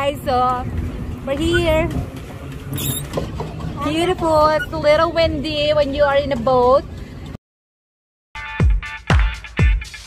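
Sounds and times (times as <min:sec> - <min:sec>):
wind buffeting microphone: 0:00.0 - 0:02.7
brief high squeak: 0:02.7 - 0:03.2.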